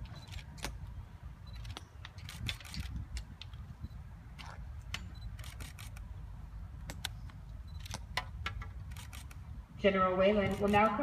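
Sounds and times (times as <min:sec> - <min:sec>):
wind rumble on microphone: 0:00.0 - 0:05.5, 0:08.4 - 0:11.0
sharp clicks: 0:01.4 - 0:03.6, 0:04.4 - 0:06.1, 0:06.8 - 0:09.4.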